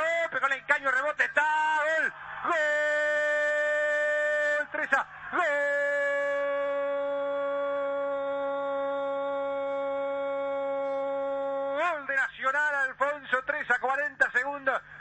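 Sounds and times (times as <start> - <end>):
commentator's drawn-out cry: 1.0 - 12.1.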